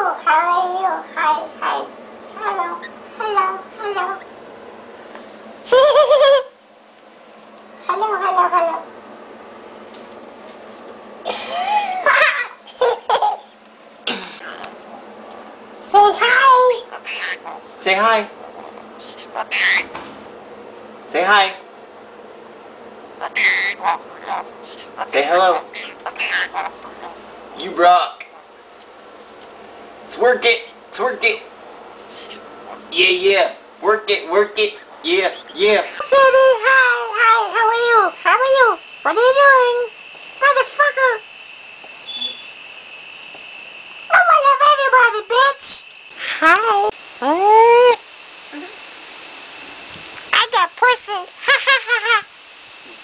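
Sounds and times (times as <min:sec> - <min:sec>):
parrot squawking: 0:00.2 - 0:04.3, 0:07.8 - 0:08.9, 0:16.1 - 0:20.0, 0:23.2 - 0:28.6, 0:32.1 - 0:33.2, 0:34.2 - 0:41.2
high-pitched vocalizing: 0:35.7 - 0:41.2, 0:44.1 - 0:48.8.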